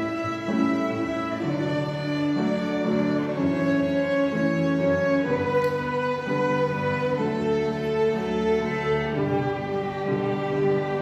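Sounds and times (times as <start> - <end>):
string ensemble playing bowed chords: 0.0 - 11.0.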